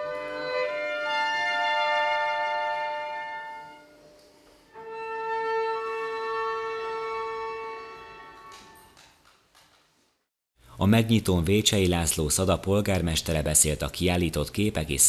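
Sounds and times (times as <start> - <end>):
violin and cello playing: 4.8 - 8.9.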